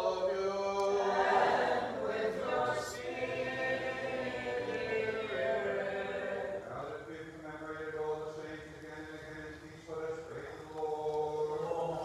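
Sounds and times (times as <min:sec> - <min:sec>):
voices singing a cappella chant: 0:00.0 - 0:12.0.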